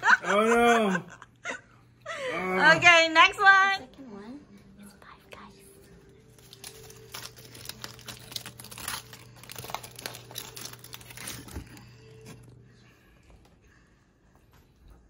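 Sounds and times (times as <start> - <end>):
foil wrapper crinkling: 6.3 - 12.6.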